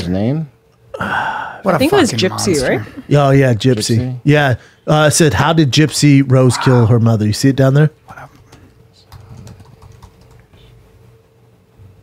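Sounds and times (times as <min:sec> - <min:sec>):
man's voice murmuring: 0:06.5 - 0:07.0
typing on computer keyboard: 0:09.1 - 0:10.5.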